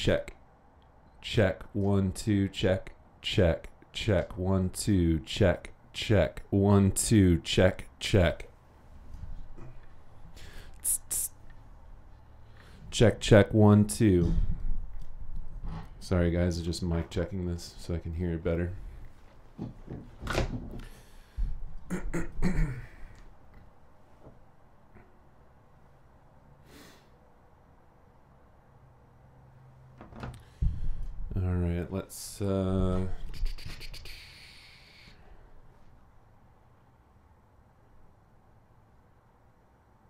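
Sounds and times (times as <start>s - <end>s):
person speaking: 0.0s - 0.4s, 1.2s - 8.5s, 10.5s - 11.4s, 12.9s - 14.5s, 31.3s - 35.1s.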